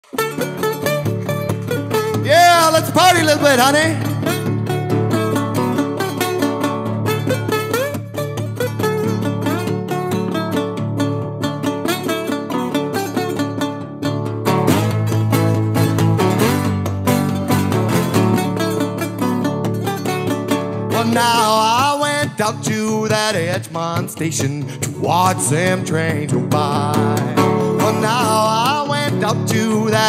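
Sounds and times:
acoustic blues guitar picking: 0:00.0 - 0:30.0.

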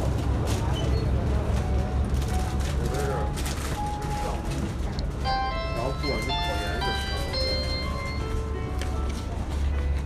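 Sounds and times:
low rumble of shop noise: 0:00.0 - 0:10.0
electronic chime tune: 0:05.3 - 0:08.4.

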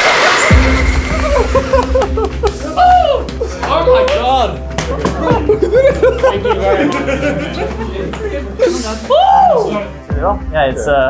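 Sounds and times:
music with deep bass: 0:00.0 - 0:11.0.

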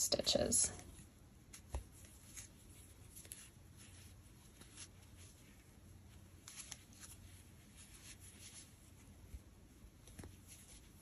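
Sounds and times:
yarn and crochet hook rustling: 0:00.1 - 0:11.0.

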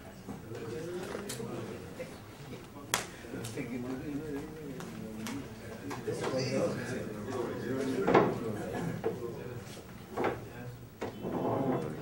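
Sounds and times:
low voices talking: 0:00.0 - 0:12.0.

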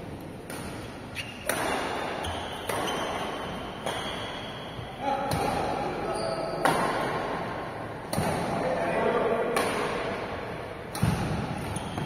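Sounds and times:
racket hitting shuttlecock: 0:00.4 - 0:05.9, 0:06.6 - 0:07.4, 0:08.0 - 0:08.6, 0:09.5 - 0:12.0.

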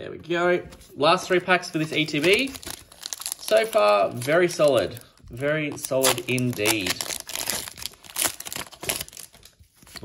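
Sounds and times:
foil wrapper tearing and crinkling: 0:02.0 - 0:10.0.

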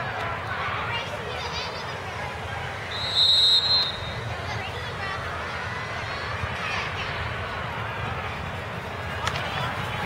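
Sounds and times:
crowd chatter: 0:00.0 - 0:10.0
referee's whistle blast: 0:02.9 - 0:04.2.

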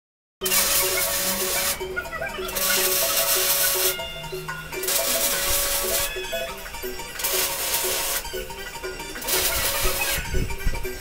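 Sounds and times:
welder arc crackling: 0:00.4 - 0:11.0.

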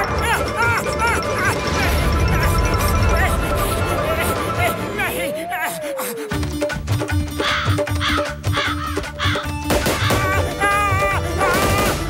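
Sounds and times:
crows cawing: 0:07.2 - 0:10.6.

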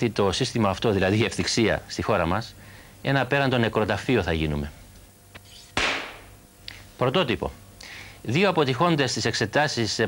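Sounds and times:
clapperboard snap: 0:05.8 - 0:06.4.

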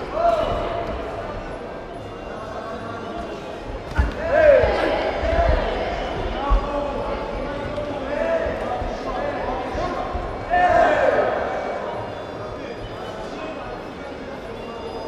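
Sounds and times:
shouts echoing in a hall: 0:00.0 - 0:15.0.

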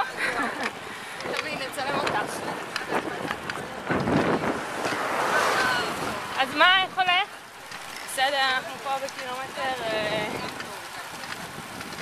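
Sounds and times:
wind rushing over microphone: 0:00.0 - 0:07.2, 0:08.6 - 0:12.0.

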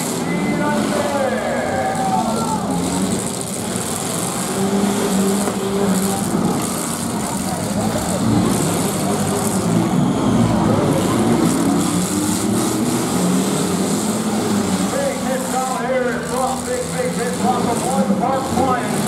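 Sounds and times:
car engines revving: 0:00.0 - 0:19.0
crowd chatter: 0:00.0 - 0:19.0.

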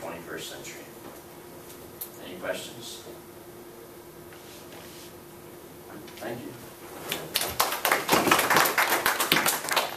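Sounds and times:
audience clapping: 0:07.3 - 0:09.9.

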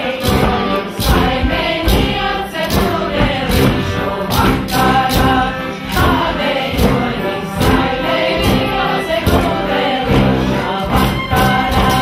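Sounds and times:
brass accompaniment: 0:00.0 - 0:12.0
drum beating steadily: 0:00.0 - 0:12.0
group singing folk music: 0:00.0 - 0:12.0.

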